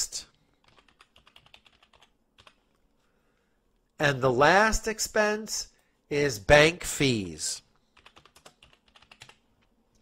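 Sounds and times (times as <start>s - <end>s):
computer keyboard clicks: 0.6s - 2.7s, 8.0s - 9.4s.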